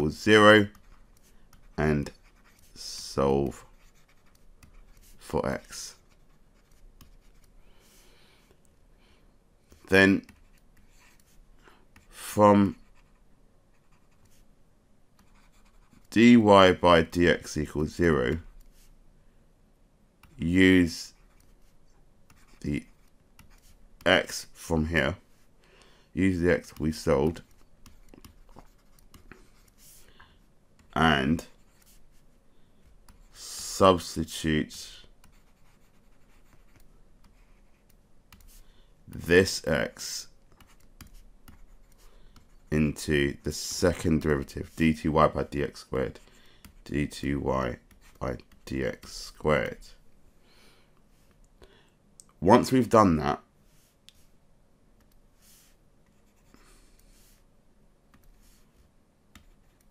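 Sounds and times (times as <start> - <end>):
stylus scratching on screen: 0.3 - 8.0, 9.7 - 14.5, 15.2 - 19.0, 20.3 - 24.5, 26.4 - 30.1, 30.8 - 32.4, 35.1 - 50.0, 55.3 - 57.5, 58.2 - 59.9.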